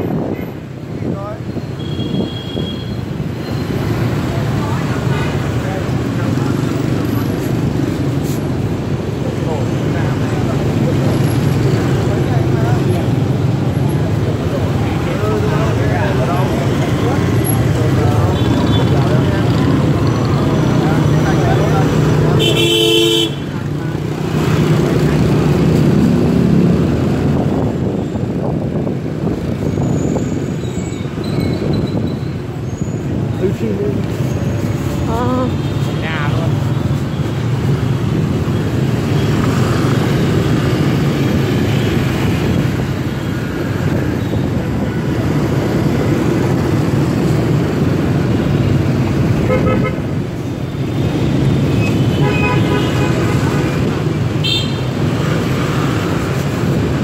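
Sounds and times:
engine and road noise: 0:00.0 - 0:57.0
vehicle horn honking: 0:22.4 - 0:23.5, 0:49.4 - 0:50.0, 0:52.1 - 0:53.2, 0:54.4 - 0:54.8.

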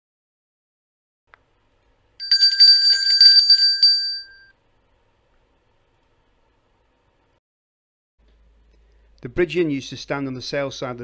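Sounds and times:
bell rung rapidly: 0:02.2 - 0:04.5.

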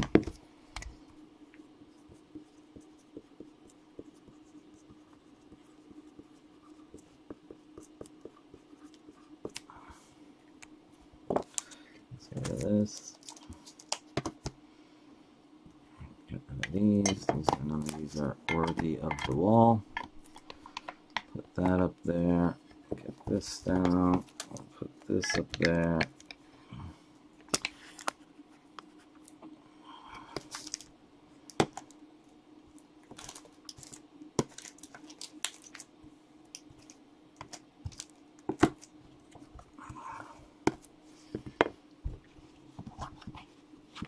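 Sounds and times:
wordless voice: 0:12.1 - 0:13.2, 0:16.0 - 0:19.9, 0:21.3 - 0:26.1.

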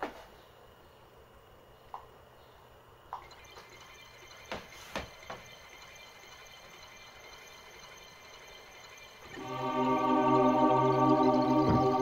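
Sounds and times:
faint electronic hum: 0:00.1 - 0:12.0.

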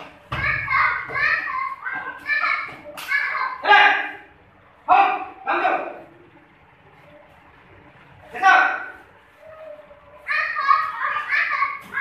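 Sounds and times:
children shouting: 0:00.0 - 0:04.3, 0:08.6 - 0:12.0.

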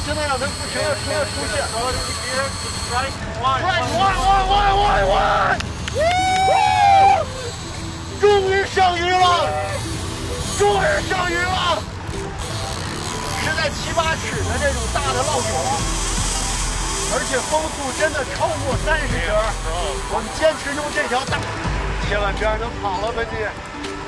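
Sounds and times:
background music: 0:00.0 - 0:24.0
wind: 0:00.0 - 0:24.0.

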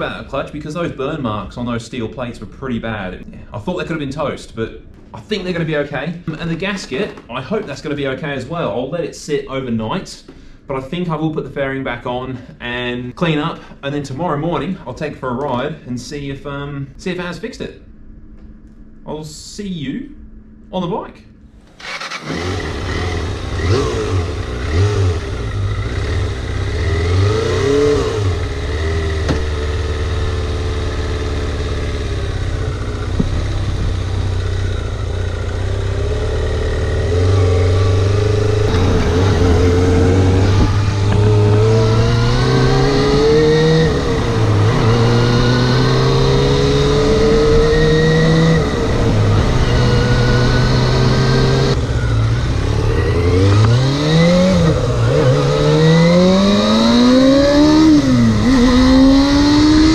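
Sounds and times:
motorcycle engine accelerating: 0:21.6 - 0:59.9.

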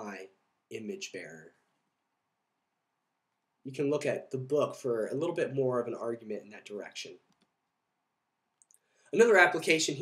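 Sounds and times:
faint clicks: 0:08.6 - 0:08.9.

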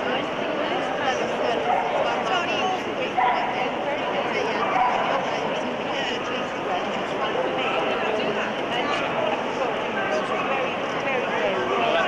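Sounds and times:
chatter of indoor crowd: 0:00.0 - 0:12.0.

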